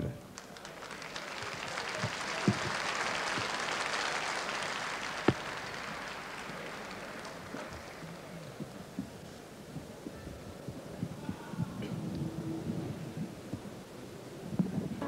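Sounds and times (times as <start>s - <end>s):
audience applauding: 0.0s - 9.2s.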